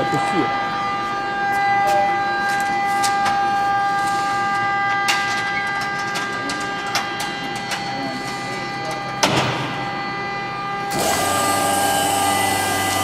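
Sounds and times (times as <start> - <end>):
steady machine whine: 0.0 - 13.0.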